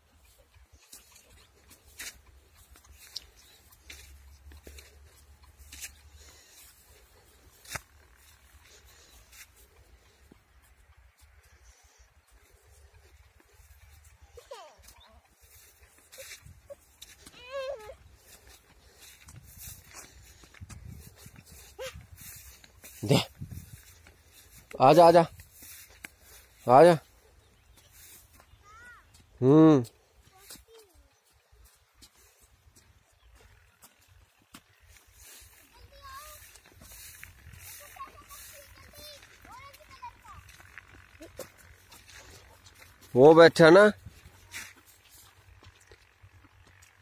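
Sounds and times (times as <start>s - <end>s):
faint field ambience: 0.0s - 47.0s
footsteps on dirt track: 0.0s - 47.0s.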